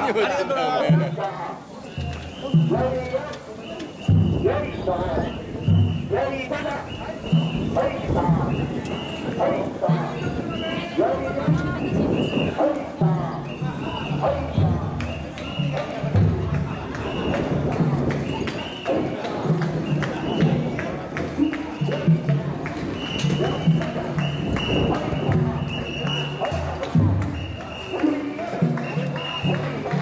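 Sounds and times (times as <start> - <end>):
voices calling out rhythmically: 0.0 - 30.0.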